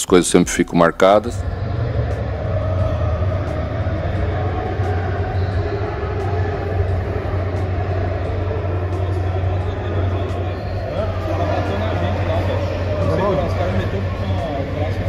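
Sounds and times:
hubbub of voices: 0.0 - 15.0
steady low rumble: 1.2 - 15.0.

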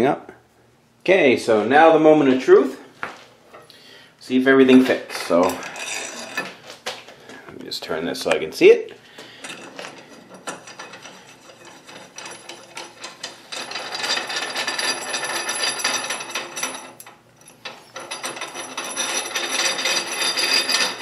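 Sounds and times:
lathe screw rubbing and clicking: 9.5 - 21.0.

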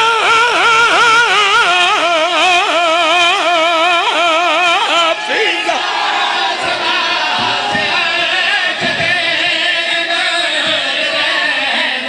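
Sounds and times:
man's amplified sung recitation: 0.0 - 5.8, 6.6 - 12.0.

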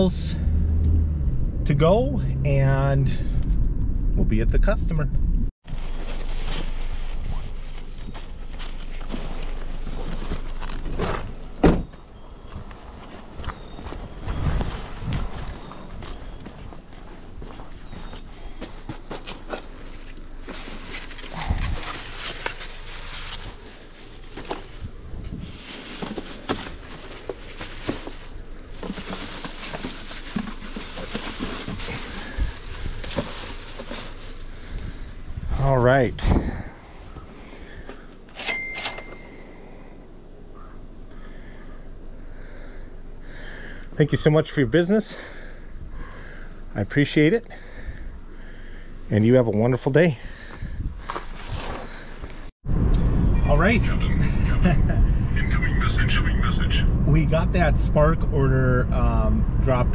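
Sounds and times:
plastic bags rustling: 19.3 - 34.7.

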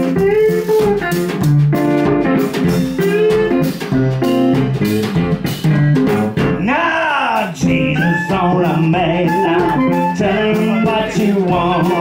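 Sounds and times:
clarinet: 0.0 - 3.9, 7.7 - 12.0
acoustic guitar: 0.0 - 12.0
drum kit: 0.0 - 12.0.

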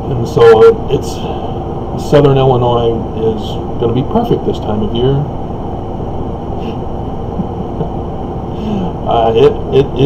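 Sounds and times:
low background rumble: 0.0 - 10.0
man chuckling: 6.6 - 9.0.

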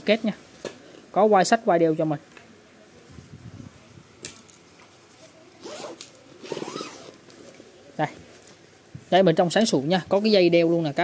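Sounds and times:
zipper being pulled open: 5.6 - 7.2.

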